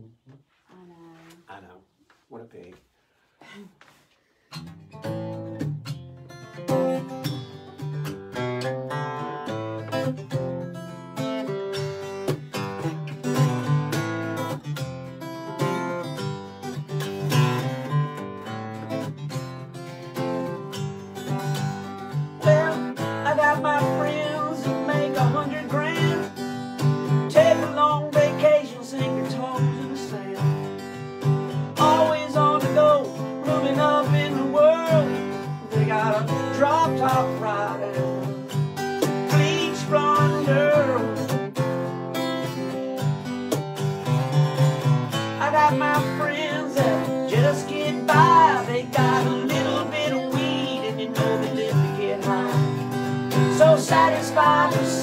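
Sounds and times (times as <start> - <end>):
acoustic guitars strumming: 4.4 - 55.0.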